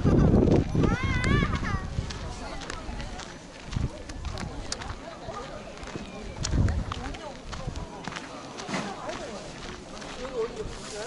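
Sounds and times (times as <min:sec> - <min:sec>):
wind buffeting microphone: 0:00.0 - 0:08.2.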